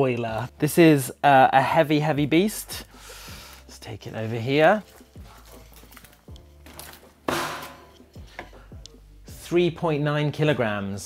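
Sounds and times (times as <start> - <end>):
book handling noise: 3.5 - 8.6.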